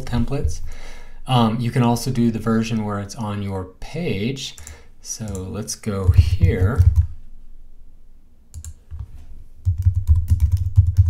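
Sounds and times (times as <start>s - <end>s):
low thumps of keystrokes: 5.3s - 7.1s, 9.6s - 11.0s.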